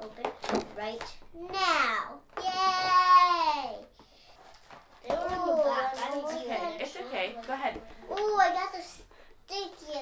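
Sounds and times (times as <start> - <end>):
child talking: 0.0 - 3.9, 5.0 - 7.3, 8.0 - 10.0.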